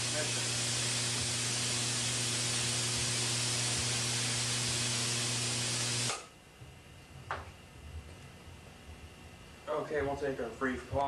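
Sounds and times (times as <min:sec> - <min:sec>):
tesla coil electrical hiss: 0:00.0 - 0:06.3
low mains hum: 0:00.0 - 0:11.0.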